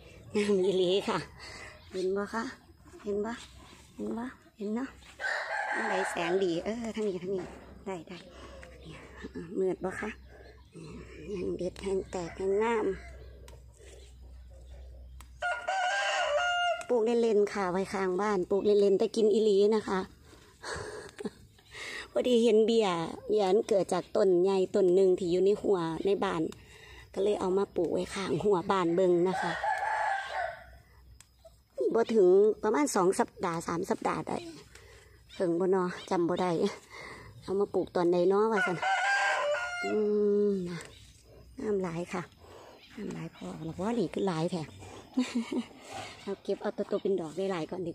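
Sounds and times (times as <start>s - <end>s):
rooster crowing: 5.2s - 6.7s, 15.4s - 17.0s, 28.9s - 30.8s, 38.5s - 40.1s.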